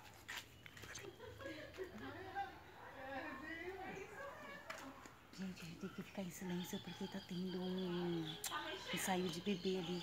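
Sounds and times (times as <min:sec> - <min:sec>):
distant voices talking: 0:00.6 - 0:10.0.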